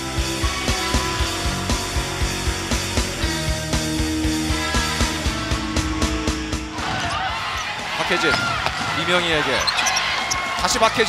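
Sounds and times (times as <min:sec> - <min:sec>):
sneakers squeaking on hardwood floor: 0:07.0 - 0:10.6.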